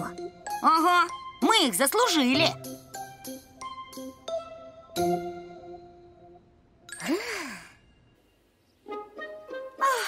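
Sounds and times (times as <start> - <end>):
music: 0.0 - 6.7, 8.8 - 10.0.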